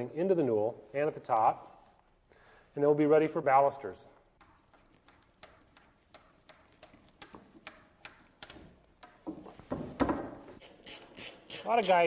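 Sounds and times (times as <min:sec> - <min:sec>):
ratchet wrench clicking: 0:10.6 - 0:12.0.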